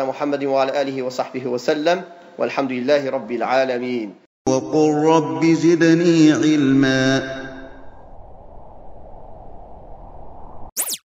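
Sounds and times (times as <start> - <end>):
electronic sweep of crossing tones: 10.8 - 11.0.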